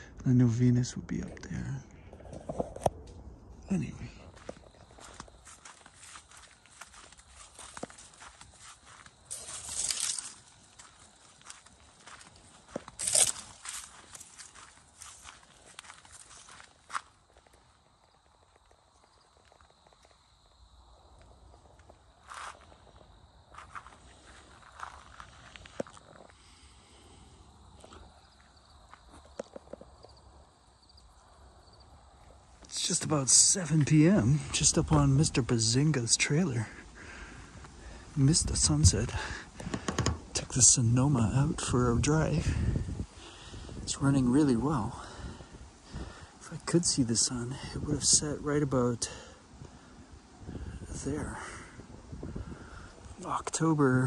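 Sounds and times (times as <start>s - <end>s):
footsteps: 4.2s - 18.8s, 21.2s - 26.5s, 37.4s - 40.7s
dry corn stalks rustling: 4.4s - 20.1s, 21.6s - 26.4s.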